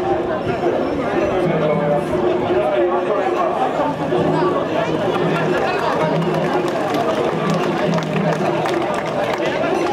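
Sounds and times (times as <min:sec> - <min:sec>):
hubbub of voices: 0:00.0 - 0:09.9.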